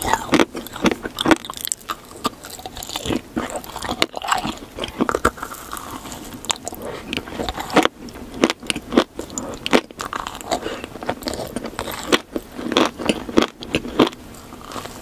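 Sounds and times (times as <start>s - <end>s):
chewing crunchy cake pop: 0.0s - 15.0s.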